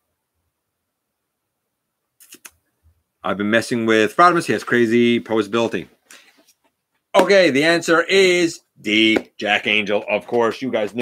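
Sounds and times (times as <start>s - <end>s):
short clicks: 2.2s - 2.6s.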